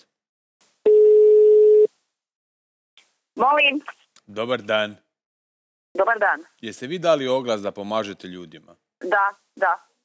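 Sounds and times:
telephone ringback tone: 0:00.9 - 0:01.9.

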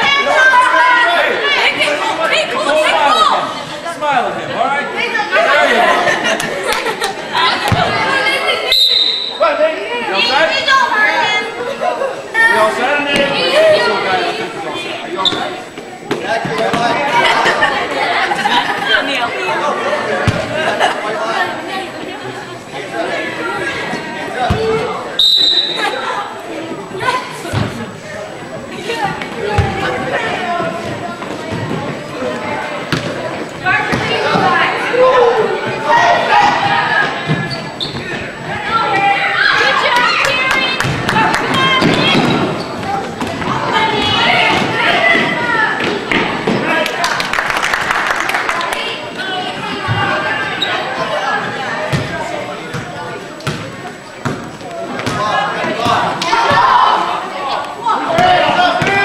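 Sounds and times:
chatter of voices: 0:00.0 - 0:59.0
referee's whistle blast: 0:08.7 - 0:09.4, 0:25.2 - 0:26.0.

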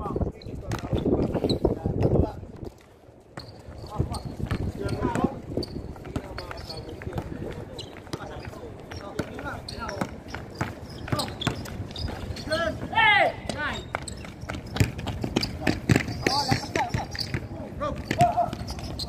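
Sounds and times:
players' voices: 0:00.0 - 0:19.0
basketball bouncing on concrete: 0:00.6 - 0:01.0, 0:03.4 - 0:12.2, 0:13.4 - 0:19.0
loud shout: 0:12.9 - 0:13.5.

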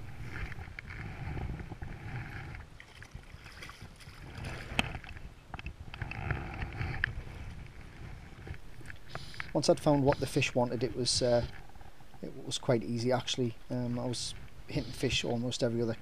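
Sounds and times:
wind rumble on microphone: 0:00.0 - 0:12.3
water sloshing: 0:02.5 - 0:05.2.

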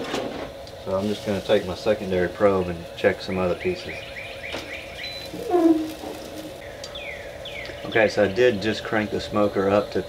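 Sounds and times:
faint steady hum: 0:00.0 - 0:10.0
songbird chirping: 0:03.2 - 0:08.7.

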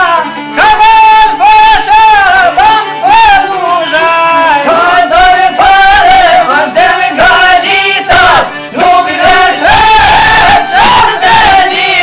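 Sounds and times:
lutes playing: 0:00.0 - 0:12.0
men singing folk song: 0:00.0 - 0:12.0.

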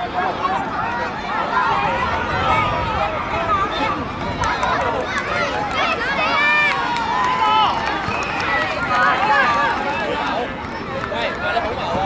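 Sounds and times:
adults' voices: 0:00.0 - 0:12.0
children shouting and chattering: 0:00.0 - 0:12.0.

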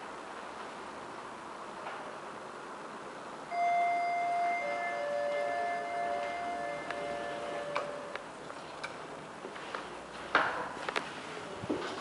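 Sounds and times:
elevator two-note chime: 0:03.5 - 0:08.2.

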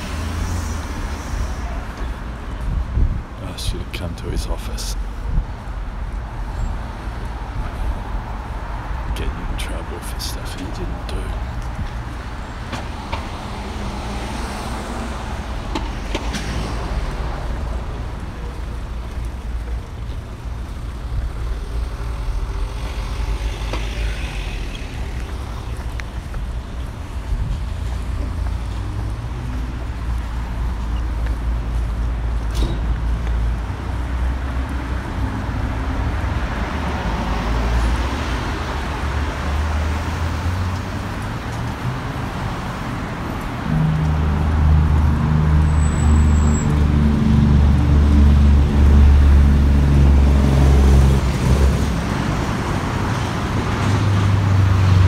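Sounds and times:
cars passing: 0:00.0 - 0:55.0.

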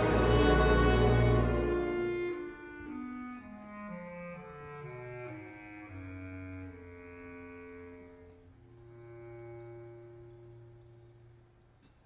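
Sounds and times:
orchestra playing low chords: 0:00.0 - 0:11.2.

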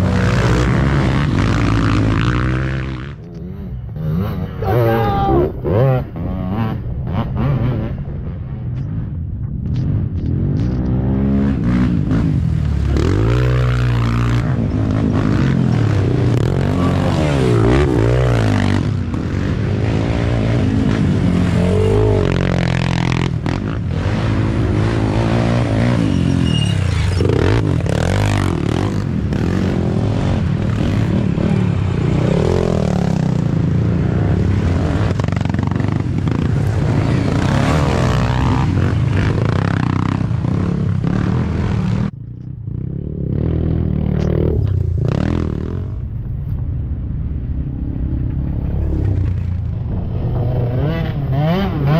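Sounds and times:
quad engines revving: 0:00.0 - 0:08.0, 0:10.2 - 0:42.2, 0:48.3 - 0:51.9.

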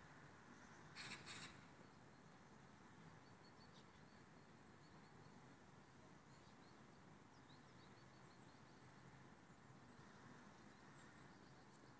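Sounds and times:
small birds chirping: 0:00.5 - 0:11.9
crow calls: 0:01.0 - 0:01.6.

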